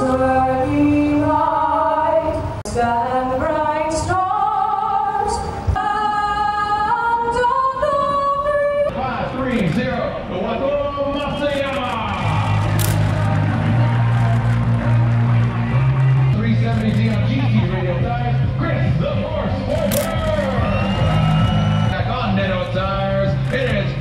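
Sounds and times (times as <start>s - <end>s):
woman singing over public address: 0.0s - 8.9s
crowd cheering: 11.9s - 17.9s, 19.5s - 23.2s.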